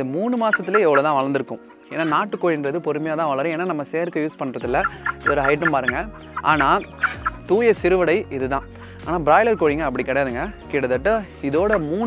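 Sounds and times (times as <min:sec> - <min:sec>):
background music: 0:00.0 - 0:12.0
chicken clucking: 0:00.4 - 0:01.2, 0:01.9 - 0:02.3, 0:04.7 - 0:07.6, 0:11.6 - 0:11.9.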